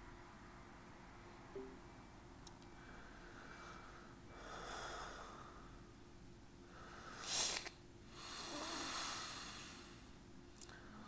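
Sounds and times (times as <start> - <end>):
breathing through the nose: 6.8 - 10.2.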